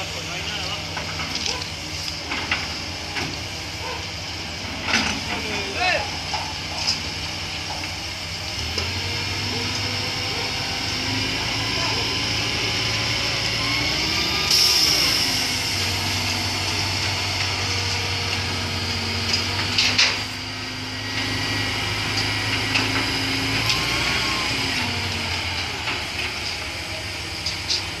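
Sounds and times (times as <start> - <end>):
crane engine running: 0.0 - 28.0.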